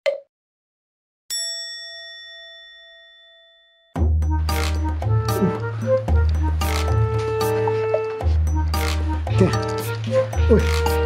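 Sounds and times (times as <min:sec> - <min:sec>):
bell-like chime ringing: 0:01.3 - 0:04.2.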